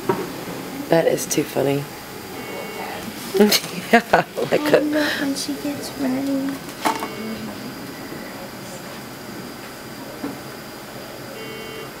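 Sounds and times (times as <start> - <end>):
thin high whine: 0.0 - 12.0
brief flat tone: 2.4 - 3.0, 6.9 - 8.4, 11.4 - 12.0.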